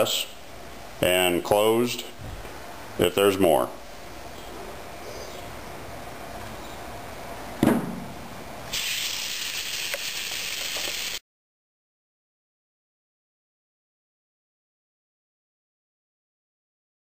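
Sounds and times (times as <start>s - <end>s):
compressed air hissing from valve: 8.7s - 11.2s.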